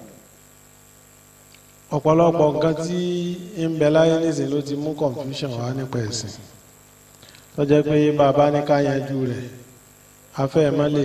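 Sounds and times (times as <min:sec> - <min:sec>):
faint high whine: 0:00.0 - 0:11.0
low electrical mains hum: 0:00.0 - 0:11.0
man speaking: 0:01.9 - 0:06.5, 0:07.6 - 0:09.7, 0:10.4 - 0:11.0.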